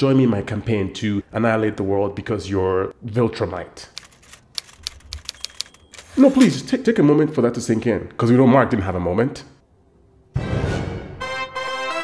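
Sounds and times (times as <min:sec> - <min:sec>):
typewriter key strikes: 0:04.0 - 0:06.6.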